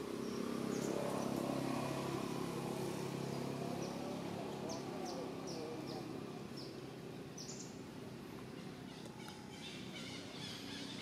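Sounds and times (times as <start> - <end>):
small bird chirping: 0.2 - 1.5, 7.4 - 7.8.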